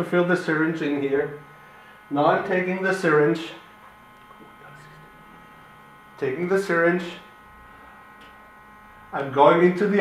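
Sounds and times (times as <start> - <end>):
machine electric hum with whine: 0.0 - 10.0.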